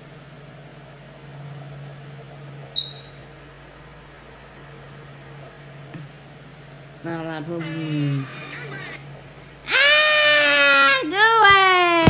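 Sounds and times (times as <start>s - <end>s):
voice-changed high-pitched wail: 9.7s - 12.0s.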